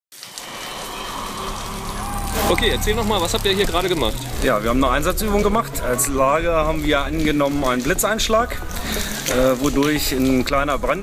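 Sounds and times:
rain falling: 0.1s - 11.0s
water dripping off roof: 0.1s - 11.0s.

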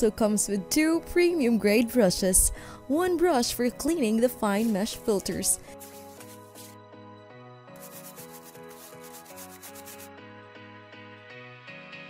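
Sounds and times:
brush scrubbing metal mesh: 4.5s - 6.8s, 7.8s - 10.1s.

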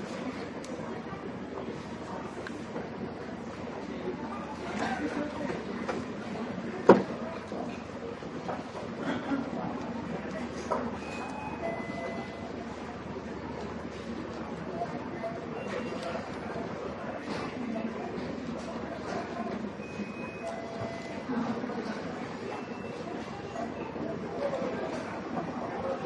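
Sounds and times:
faint electronic beep: 11.0s - 12.4s, 19.8s - 21.2s.

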